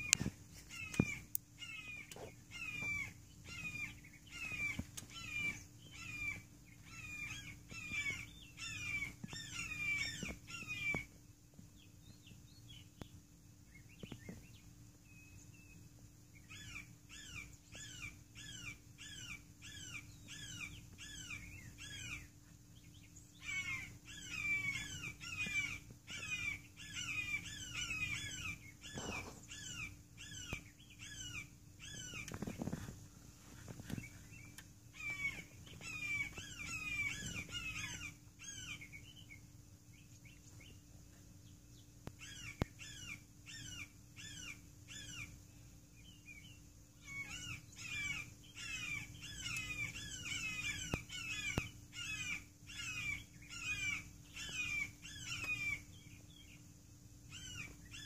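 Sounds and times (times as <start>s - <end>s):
hawks squawking: 0.0s - 11.1s, 16.5s - 22.4s, 23.4s - 32.8s, 33.8s - 39.2s, 42.2s - 45.4s, 47.0s - 56.5s, 57.3s - 58.0s.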